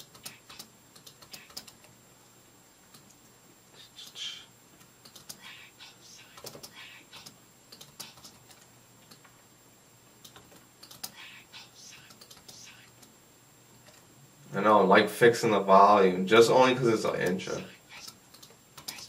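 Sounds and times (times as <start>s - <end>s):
soft whispery hisses: 0.0s - 2.4s, 3.1s - 8.7s, 10.8s - 13.1s, 16.3s - 19.0s.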